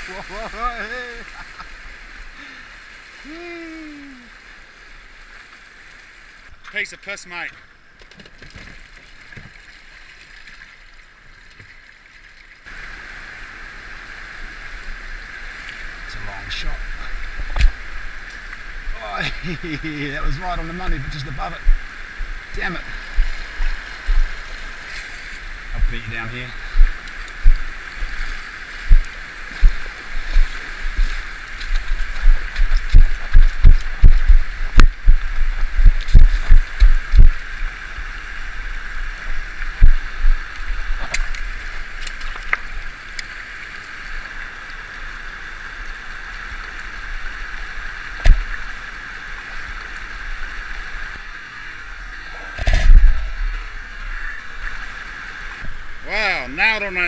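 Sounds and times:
flowing water rushing: 0.0 - 7.5, 8.6 - 57.0
footsteps splashing over river stones: 26.6 - 37.4.

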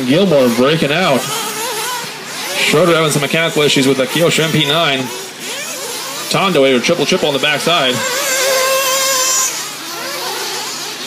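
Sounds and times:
rc car engines revving: 0.0 - 11.0.

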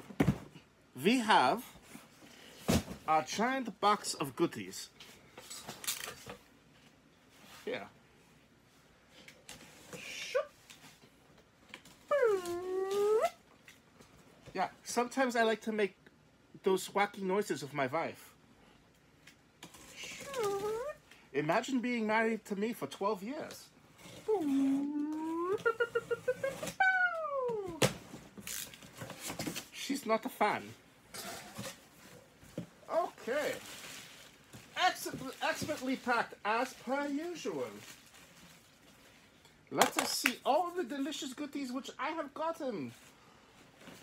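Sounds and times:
man making howl-like noise: 24.3 - 27.8.

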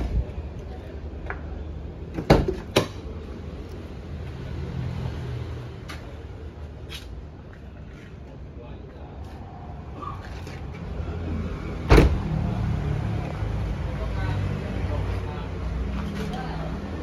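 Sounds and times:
car door shutting: 11.8 - 12.3.

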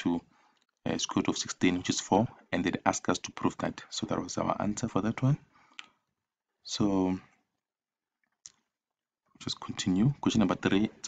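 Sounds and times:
person speaking: 0.0 - 5.5, 9.4 - 11.0.

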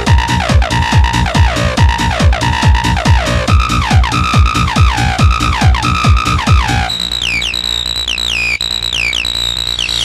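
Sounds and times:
high synthesizer riff: 0.0 - 10.0.

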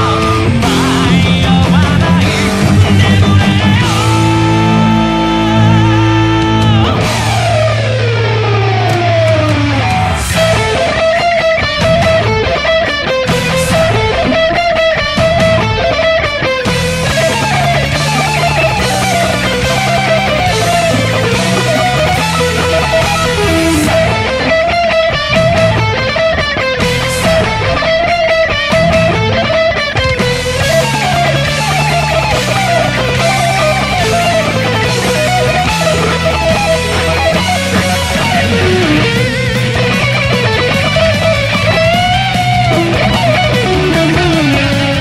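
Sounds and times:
distorted electric guitar sliding note: 0.0 - 45.0
rock band backing track: 0.0 - 45.0.

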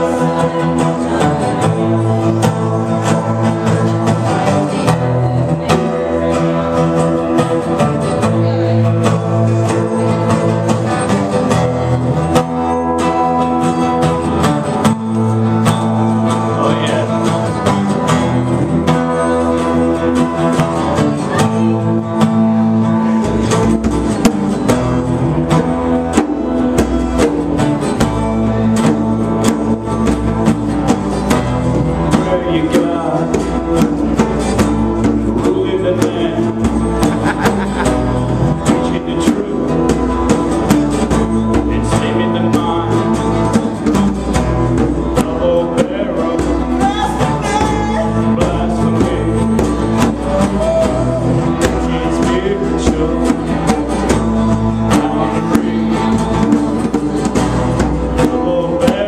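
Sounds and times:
acoustic guitar strumming: 0.0 - 59.0
other instruments playing: 0.0 - 59.0.

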